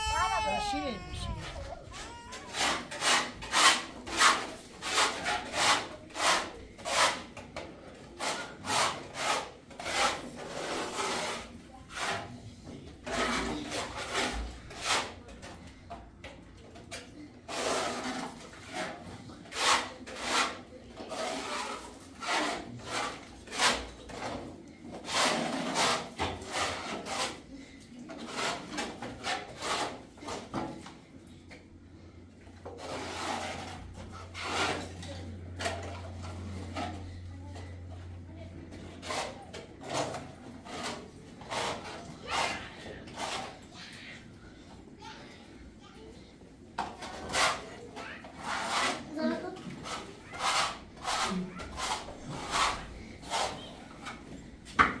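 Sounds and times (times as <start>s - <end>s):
trowel scraping wet plaster: 0.2s - 15.5s, 17.0s - 30.6s, 32.6s - 37.1s, 38.8s - 43.7s, 46.9s - 54.2s.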